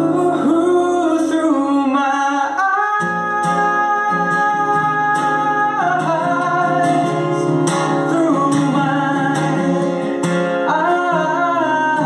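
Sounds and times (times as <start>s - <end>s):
man singing a country ballad: 0.0s - 12.0s
strummed acoustic guitar: 0.0s - 12.0s.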